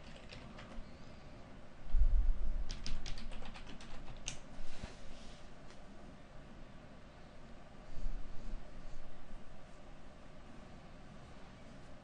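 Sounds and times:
computer keyboard key clicks: 0:00.0 - 0:00.8, 0:02.7 - 0:04.4.

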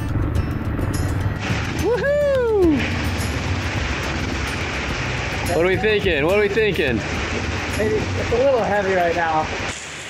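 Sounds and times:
dirt bike engines running: 0:00.0 - 0:09.6
heavy rain hissing: 0:00.2 - 0:10.0.

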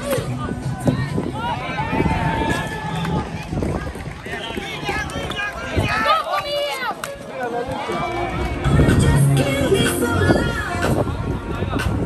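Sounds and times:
footsteps on plastic court: 0:00.0 - 0:08.7.

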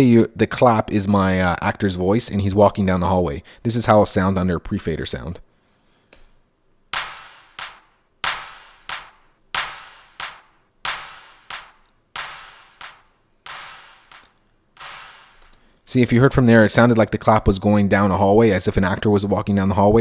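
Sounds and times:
sampled hand claps with reverb: 0:07.0 - 0:14.4.

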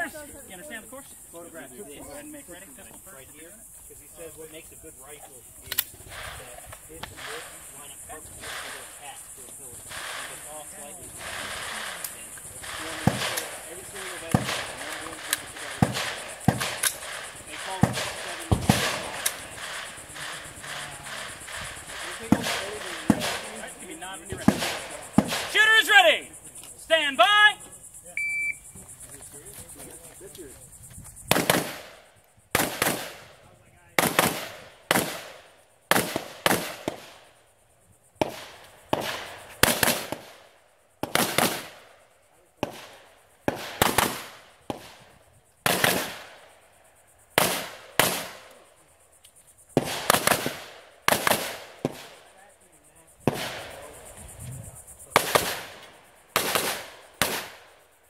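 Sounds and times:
rifle shots with echo: 0:11.2 - 0:23.7, 0:24.4 - 0:25.6, 0:31.3 - 0:33.4, 0:34.0 - 0:37.2, 0:38.2 - 0:41.9, 0:42.6 - 0:46.4, 0:47.4 - 0:48.4, 0:49.8 - 0:52.2, 0:53.3 - 0:53.8, 0:55.2 - 0:57.7
shot timer beep: 0:28.2 - 0:28.6.

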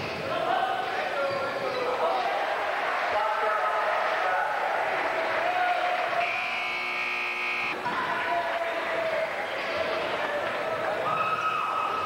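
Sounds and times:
scoreboard buzzer: 0:06.2 - 0:07.8.

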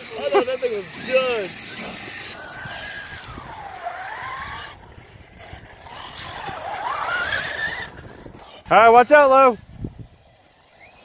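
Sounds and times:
electric toy car motor whining: 0:00.0 - 0:11.0.

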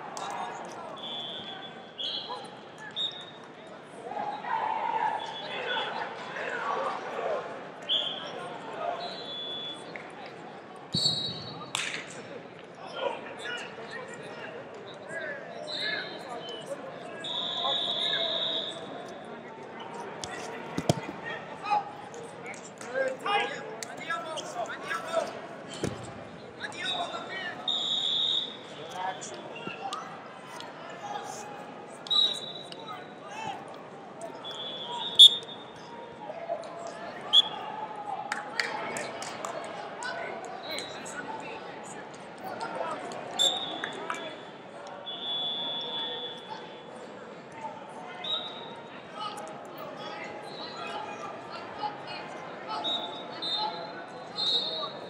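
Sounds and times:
crowd chatter and shouts: 0:00.0 - 0:55.0
referee whistle blasts: 0:01.0 - 0:03.4, 0:10.9 - 0:11.6, 0:17.2 - 0:18.9, 0:26.9 - 0:28.8, 0:32.0 - 0:32.8, 0:34.4 - 0:35.7, 0:37.3 - 0:37.6, 0:43.4 - 0:46.6, 0:52.9 - 0:55.0.

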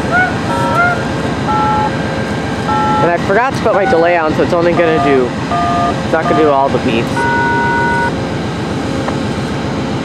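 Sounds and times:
diesel locomotive idling: 0:00.0 - 0:10.0
brief high beeps: 0:04.8 - 0:06.6, 0:07.2 - 0:08.1.

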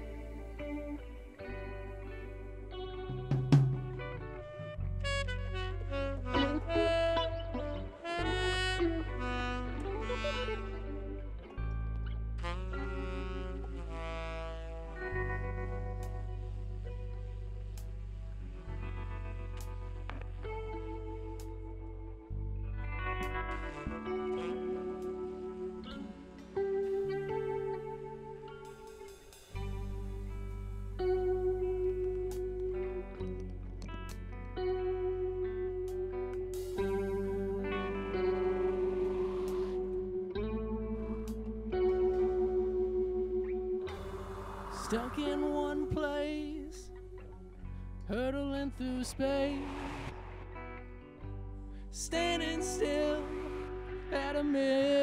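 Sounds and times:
tenor saxophone long notes: 0:00.0 - 0:22.0, 0:23.1 - 0:32.3, 0:36.6 - 0:47.8, 0:51.8 - 0:54.8
bass guitar: 0:00.0 - 0:55.0
drum kit playing: 0:03.2 - 0:04.2
sustained low bass: 0:29.6 - 0:54.9.

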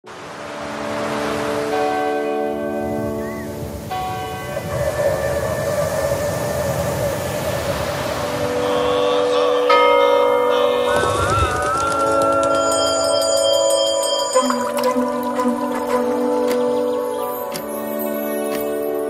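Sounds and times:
bells ringing: 0:01.3 - 0:05.9, 0:08.4 - 0:15.8, 0:16.7 - 0:19.0
steady wash of noise: 0:03.6 - 0:09.6
wavering held tone: 0:08.8 - 0:18.4.

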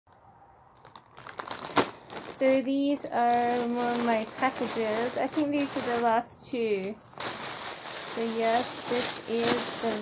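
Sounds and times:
sharp plastic crackle: 0:00.7 - 0:10.0
plastic satchel crinkling: 0:00.8 - 0:10.0.

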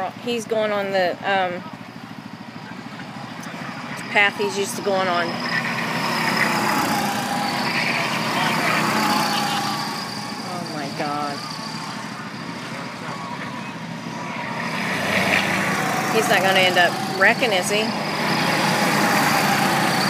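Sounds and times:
go-kart engines passing: 0:00.0 - 0:20.0.

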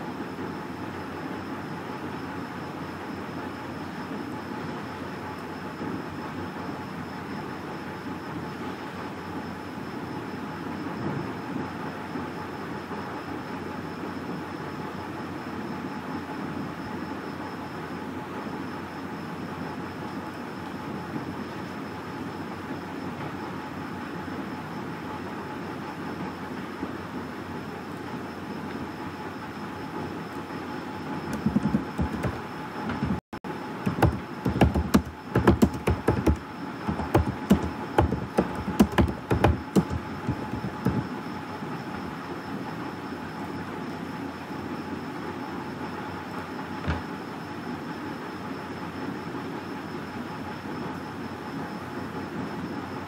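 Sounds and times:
continuous rumbling hiss: 0:00.0 - 0:53.0.

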